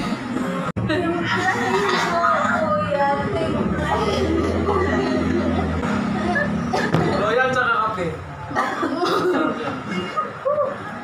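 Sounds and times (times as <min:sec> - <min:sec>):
voices: 0:00.0 - 0:11.0
person coughing: 0:08.5 - 0:10.3.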